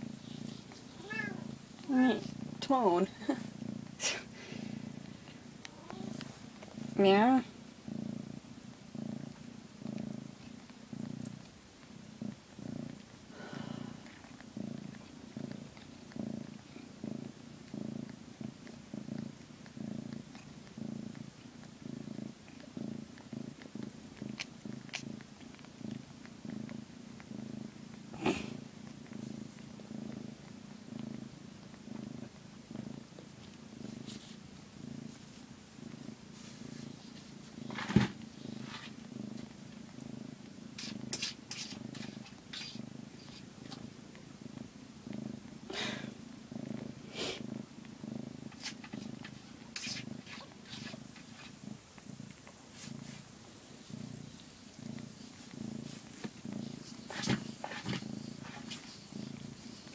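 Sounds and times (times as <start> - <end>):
cat purring: 0.0 - 59.9
soft clicks and rustles: 4.7 - 7.6, 13.9 - 45.6, 47.8 - 59.9.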